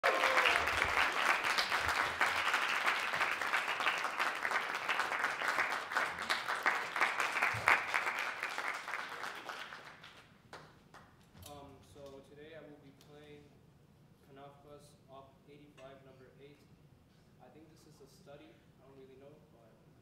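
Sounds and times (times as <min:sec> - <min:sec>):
audience applauding: 0:00.0 - 0:10.6.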